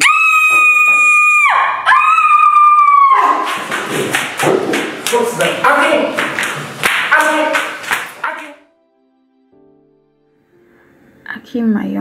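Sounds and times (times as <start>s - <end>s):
high-pitched screams: 0.0s - 3.6s.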